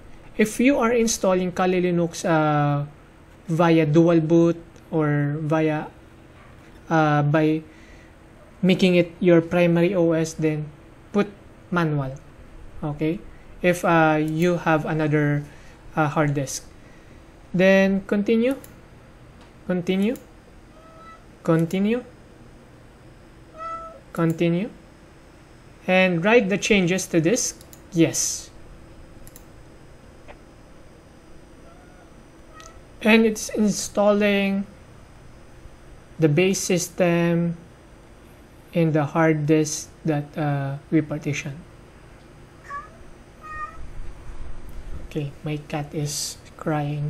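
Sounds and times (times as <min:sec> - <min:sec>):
cat meowing: 0:20.7 - 0:21.3, 0:23.5 - 0:24.0, 0:31.6 - 0:32.8, 0:42.6 - 0:43.9.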